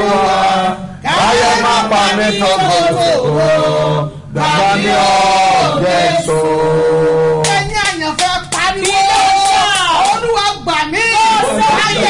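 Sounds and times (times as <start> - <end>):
hand claps: 7.4 - 10.3.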